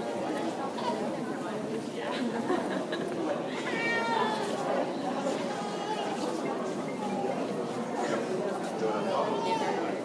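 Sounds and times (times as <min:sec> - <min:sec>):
murmur of overlapping voices: 0:00.0 - 0:10.0.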